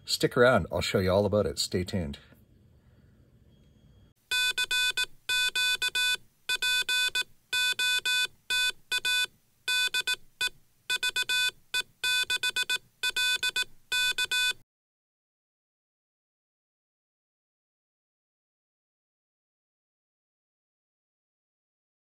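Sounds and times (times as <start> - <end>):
buzzy morse code tone: 4.3 - 14.6.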